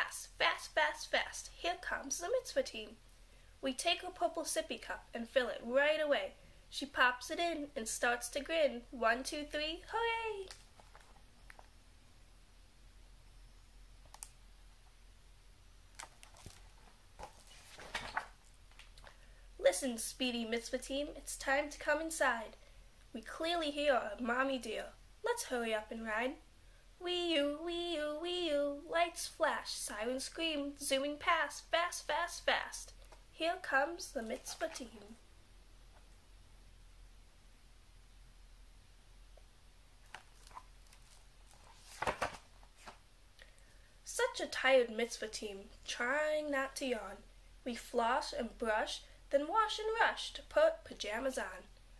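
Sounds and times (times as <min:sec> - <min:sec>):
book pages turning: 0:10.4 - 0:11.7, 0:15.9 - 0:19.2, 0:40.0 - 0:43.0
faint clicks of book handling: 0:10.4 - 0:11.7, 0:15.9 - 0:19.2, 0:39.3 - 0:43.6
book knocks and rustles: 0:41.5 - 0:43.0.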